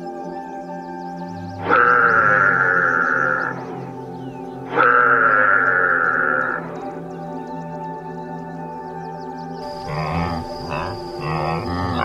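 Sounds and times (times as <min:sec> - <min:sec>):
background music: 0:00.0 - 0:12.0
animal call: 0:01.5 - 0:03.8, 0:04.7 - 0:06.8, 0:09.6 - 0:12.0.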